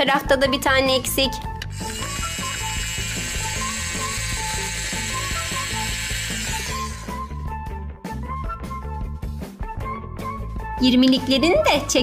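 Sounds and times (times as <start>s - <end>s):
background music: 0.0s - 12.0s
toy drill whirring: 1.5s - 7.5s.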